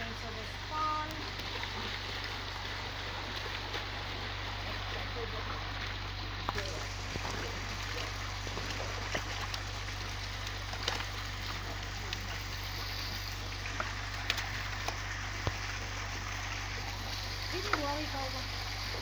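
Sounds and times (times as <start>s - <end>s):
fish splashing in basin: 0.0s - 19.0s
water pouring into pond: 0.0s - 19.0s.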